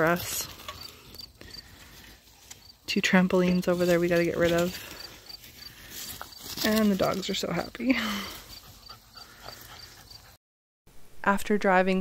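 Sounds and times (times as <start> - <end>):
person speaking: 6.6 - 8.3.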